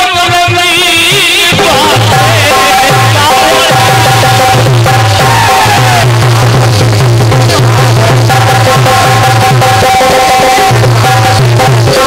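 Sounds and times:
harmonium holding long notes: 0.0s - 12.0s
steady drum beat: 0.0s - 12.0s.

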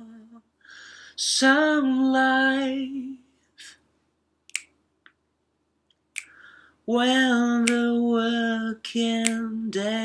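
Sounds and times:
finger snap: 4.5s - 5.2s, 6.2s - 6.5s, 7.6s - 8.0s, 9.2s - 9.6s.

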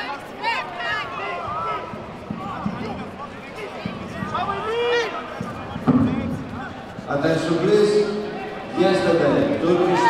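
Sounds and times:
voices calling out in echoing hall: 0.0s - 10.0s.

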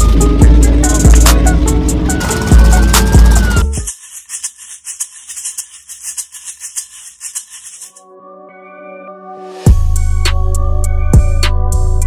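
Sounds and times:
rapid hissy rattling: 0.0s - 8.0s.

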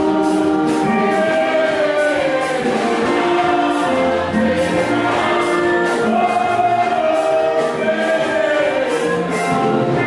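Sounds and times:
choir singing gospel: 0.0s - 10.0s.

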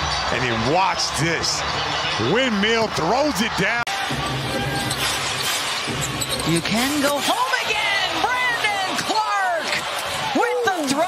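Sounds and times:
music playing: 0.0s - 8.1s
crowd noise: 0.0s - 11.0s.

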